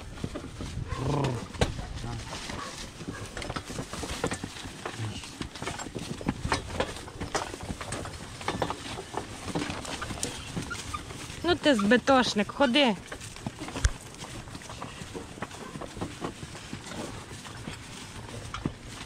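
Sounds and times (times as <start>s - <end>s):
horse hooves knocking: 0.0s - 19.0s
wooden cart and harness rattling: 0.0s - 19.0s.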